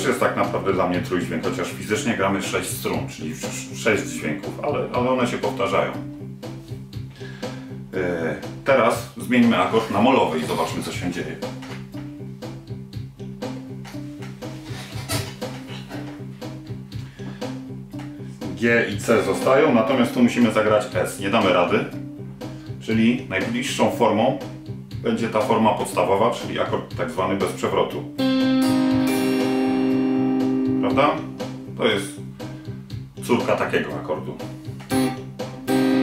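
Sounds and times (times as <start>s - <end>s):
looped backing track: 0.0s - 36.0s
clean electric guitar picking: 28.2s - 31.7s, 34.9s - 36.0s
repeating low bass line: 28.2s - 31.8s.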